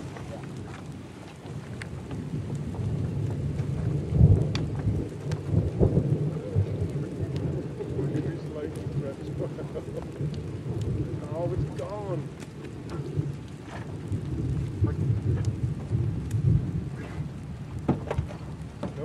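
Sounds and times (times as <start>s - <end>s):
raindrop ticks: 0.0s - 19.0s
steady rain: 0.0s - 19.0s
thunder rumbling: 0.0s - 19.0s.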